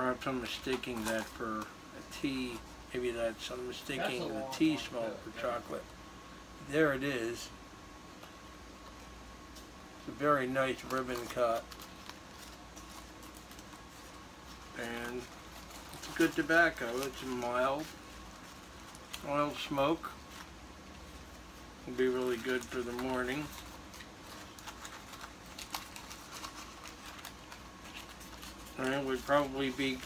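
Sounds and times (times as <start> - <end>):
low steady hum: 0.0 - 30.0
paper filter rustling: 0.1 - 5.8, 8.2 - 30.0.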